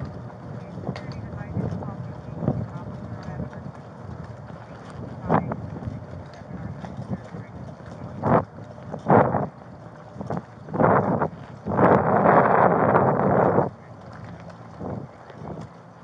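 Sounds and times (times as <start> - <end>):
rustling on body microphone: 0.0 - 15.8.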